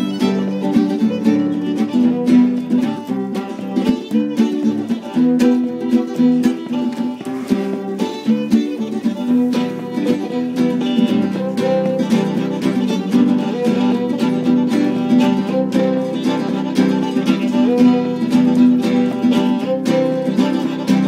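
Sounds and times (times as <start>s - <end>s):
acoustic guitar rhythm: 0.0s - 21.0s
fiddle melody: 0.0s - 21.0s.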